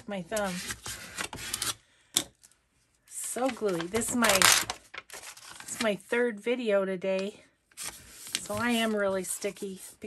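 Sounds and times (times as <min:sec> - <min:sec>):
paper rustling and rubbing: 0:07.8 - 0:10.0.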